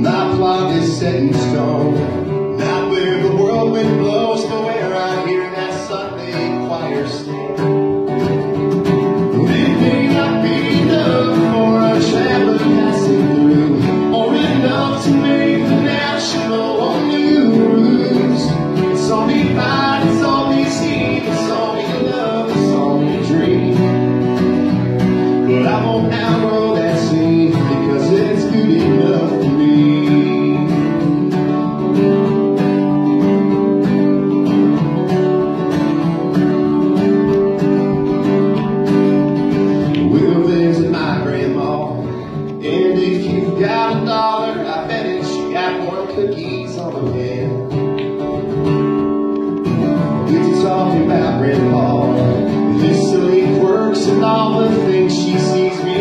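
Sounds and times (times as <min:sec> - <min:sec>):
acoustic guitars strumming: 0:00.0 - 0:56.0.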